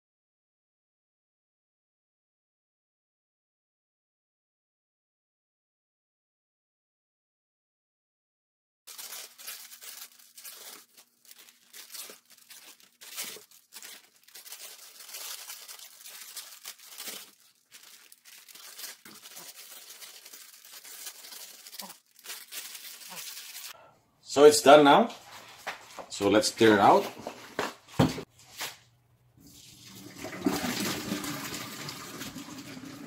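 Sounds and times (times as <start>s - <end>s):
noodles boiling in water: 29.6s - 33.0s.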